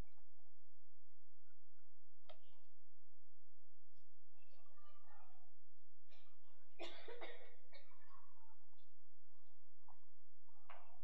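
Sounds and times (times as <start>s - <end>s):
person coughing: 6.8s - 7.9s.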